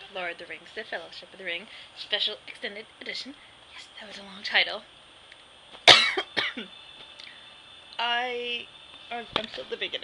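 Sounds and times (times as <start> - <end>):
woman coughing: 5.8 - 6.7.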